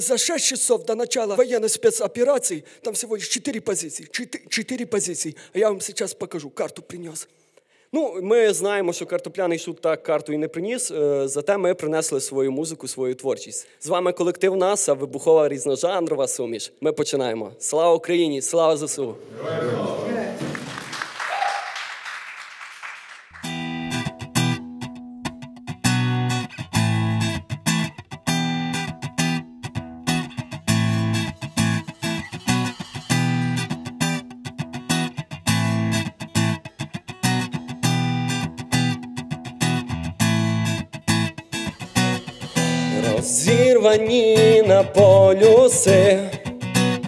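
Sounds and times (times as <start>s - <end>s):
acoustic guitar strumming: 23.4s - 47.0s
electric bass: 33.2s - 47.0s.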